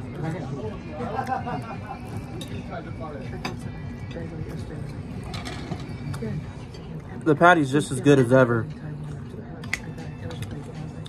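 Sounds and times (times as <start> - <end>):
low murmur of voices: 0.0 - 11.0
chewing a burger: 1.0 - 2.6.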